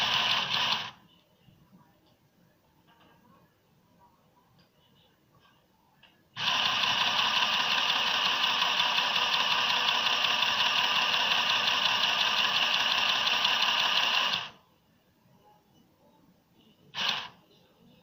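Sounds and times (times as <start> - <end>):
sewing machine stitching: 0.0 - 1.0, 6.4 - 14.6, 17.0 - 17.4.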